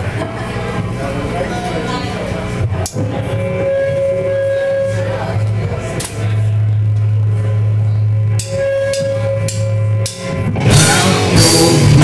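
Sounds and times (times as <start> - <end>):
electric guitar low note ringing: 2.8 - 12.0
cymbals: 8.3 - 12.0.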